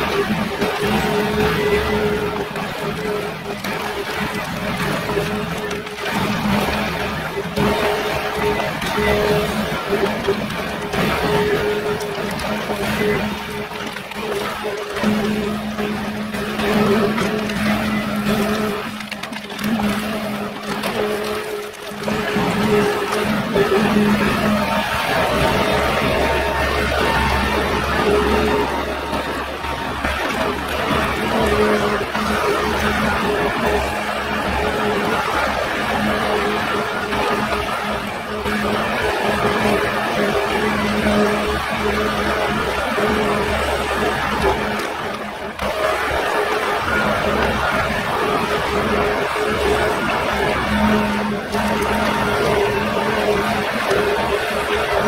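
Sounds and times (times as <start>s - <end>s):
engine and hydraulics humming: 0.0s - 55.0s.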